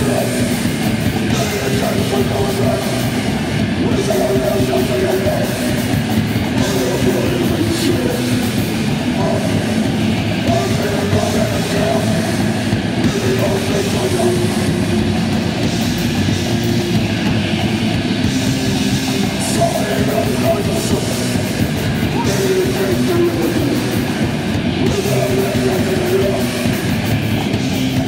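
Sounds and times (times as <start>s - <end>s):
singer shouting: 0.0s - 15.7s, 19.2s - 27.0s
bass guitar: 0.0s - 28.0s
distorted electric guitar: 0.0s - 28.0s
drums: 0.0s - 28.0s.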